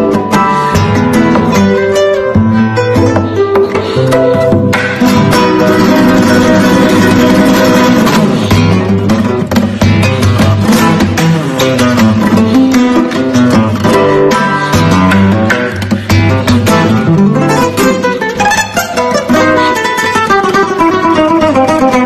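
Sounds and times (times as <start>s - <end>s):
flamenco classical guitar: 0.0s - 22.0s.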